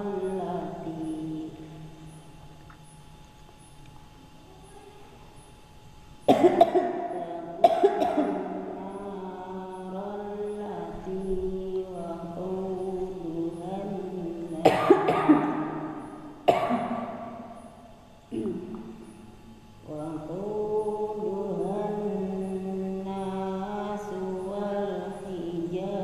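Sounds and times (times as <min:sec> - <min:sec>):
person coughing: 0:06.3 - 0:07.0, 0:07.6 - 0:08.4, 0:14.6 - 0:15.6, 0:16.5 - 0:17.0.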